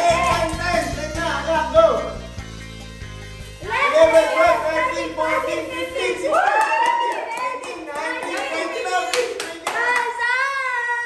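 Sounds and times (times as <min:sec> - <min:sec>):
hand claps: 0:00.0 - 0:01.0, 0:06.4 - 0:10.2.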